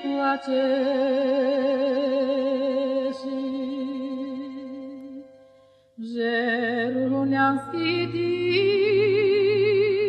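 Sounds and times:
woman singing folk song: 0.0s - 5.4s, 6.0s - 10.0s.

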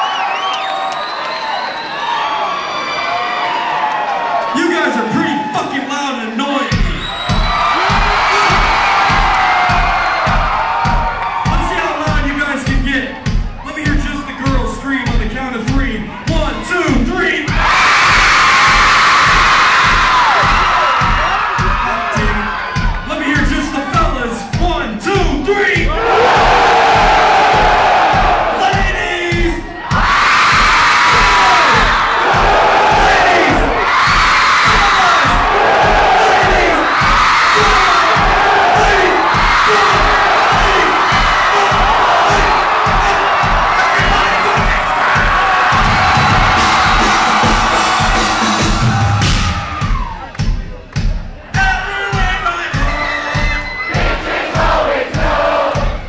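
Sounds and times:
crowd shouting and singing along: 0.0s - 56.0s
kick-drum beat: 6.7s - 56.0s
live rap-rock band playing: 23.2s - 49.9s.

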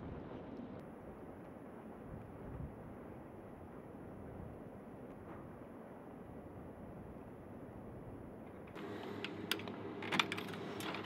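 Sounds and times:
vending machine hum: 8.7s - 11.0s.

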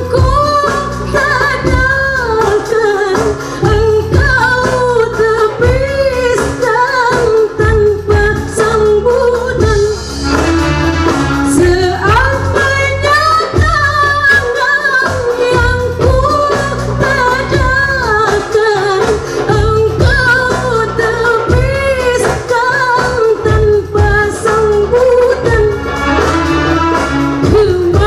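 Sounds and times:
woman singing through a pa: 0.0s - 10.1s, 11.4s - 25.8s, 27.4s - 28.0s.

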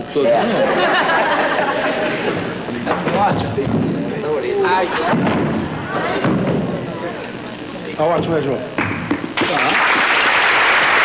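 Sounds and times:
men talking indistinctly: 2.6s - 5.2s, 6.7s - 8.8s.

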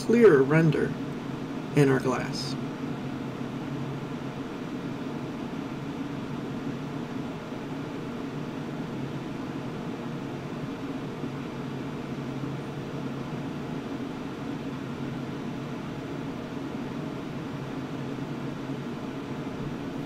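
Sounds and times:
computer cooling fans whirring: 0.0s - 20.0s.

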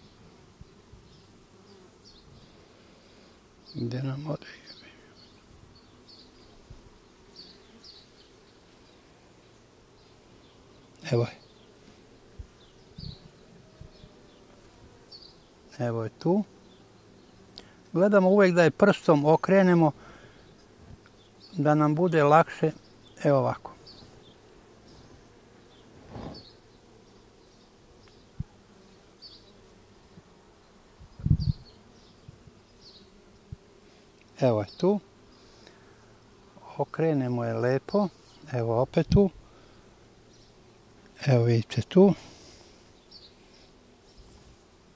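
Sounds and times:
honeybees buzzing: 0.0s - 44.9s.

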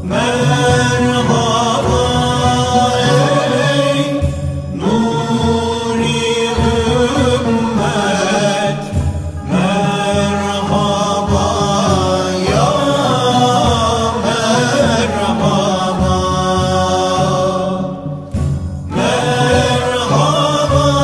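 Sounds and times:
men chanting a hymn: 0.0s - 21.0s.

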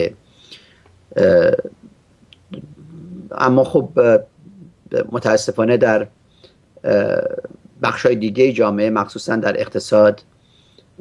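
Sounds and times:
man saying eh: 1.1s - 1.8s, 2.5s - 5.8s.

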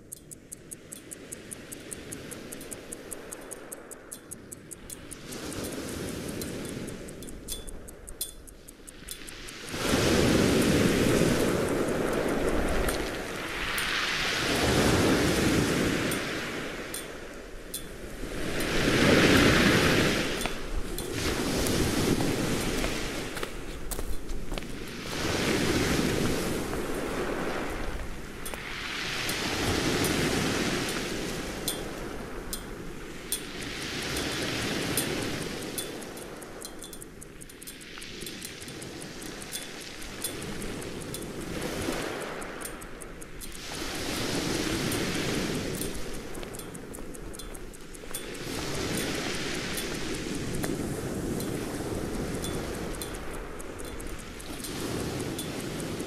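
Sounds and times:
waves washing against rocky shore: 8.9s - 56.0s.

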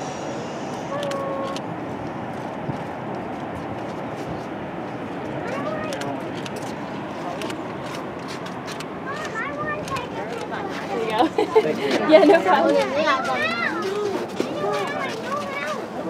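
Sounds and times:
people chattering: 0.0s - 1.8s, 3.9s - 16.0s.

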